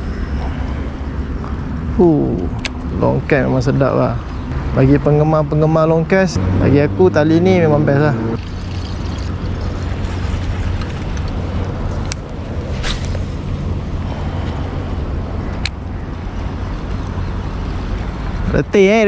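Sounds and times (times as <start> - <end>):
fishing reel clicks: 8.4 - 11.4.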